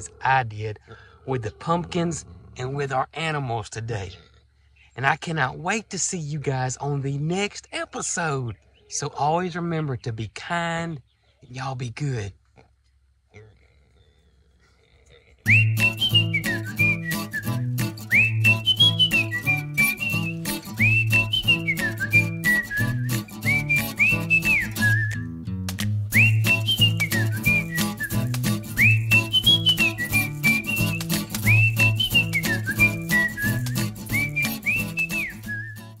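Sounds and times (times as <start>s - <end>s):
whistled melody: 15.5s - 25.4s, 26.0s - 36.0s
bass line: 15.5s - 36.0s
light clicking percussion: 30.4s - 31.6s.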